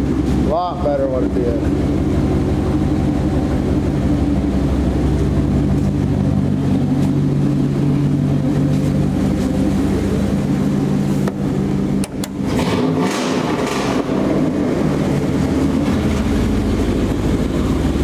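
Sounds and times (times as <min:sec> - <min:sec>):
pickup engine low exhaust note: 0:00.0 - 0:18.0.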